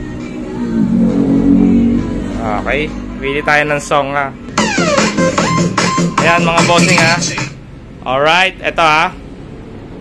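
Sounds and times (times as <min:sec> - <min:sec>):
music from portable speaker: 0:00.0 - 0:03.1, 0:04.5 - 0:07.6.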